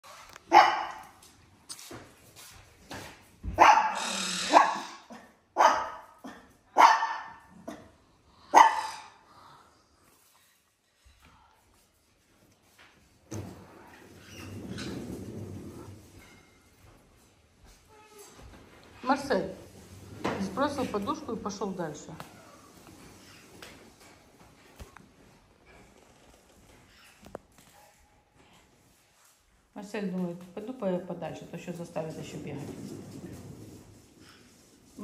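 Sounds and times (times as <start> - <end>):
dog barking: 0.5 - 1.1, 3.6 - 7.8, 8.5 - 9.1.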